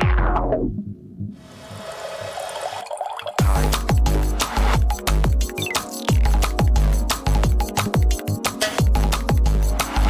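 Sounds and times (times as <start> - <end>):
washy water-like noise effect: 1.4 - 2.9.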